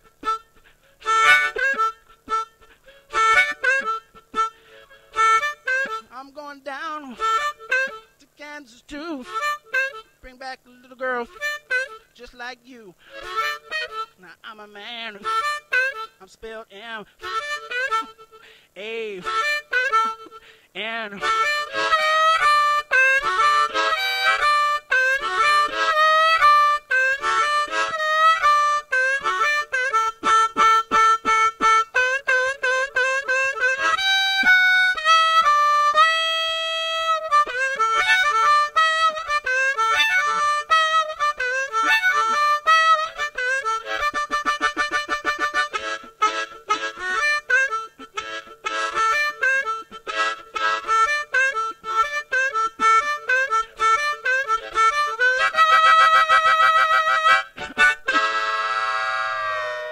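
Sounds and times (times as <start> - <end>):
blues harmonica: 0.0 - 59.9.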